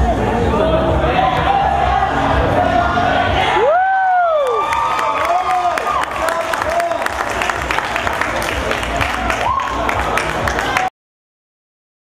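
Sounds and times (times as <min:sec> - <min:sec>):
crowd cheering and whooping: 0:01.2 - 0:10.9
long shout: 0:03.4 - 0:07.1
people clapping: 0:03.6 - 0:10.9.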